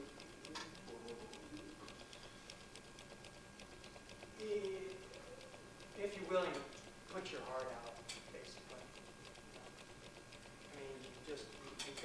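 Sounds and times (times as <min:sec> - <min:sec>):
small irregular clicks: 0:00.0 - 0:12.0.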